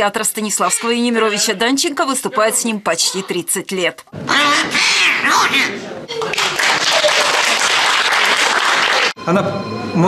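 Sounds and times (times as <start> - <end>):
puppet's shrill squawking voice: 4.2 - 5.8.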